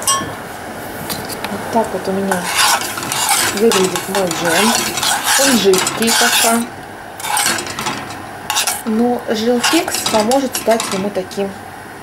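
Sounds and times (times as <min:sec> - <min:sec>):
spoon scraping saucepan: 0:02.2 - 0:11.2
spoon clinking against pan: 0:09.6 - 0:11.1.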